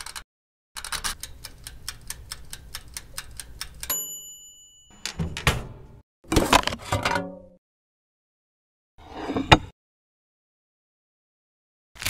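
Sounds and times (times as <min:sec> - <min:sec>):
timer knob ticking rapidly: 0:00.8 - 0:04.0
timer bell ringing: 0:03.9 - 0:05.3.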